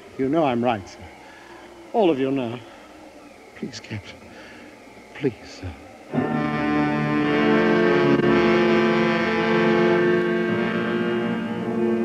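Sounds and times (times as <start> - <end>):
orchestral string chords: 6.1 - 12.0.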